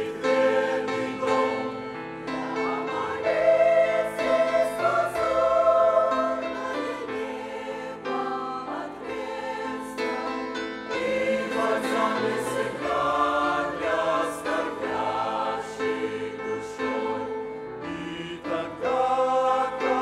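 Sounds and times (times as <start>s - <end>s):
mixed choir singing a hymn: 0.0s - 20.0s.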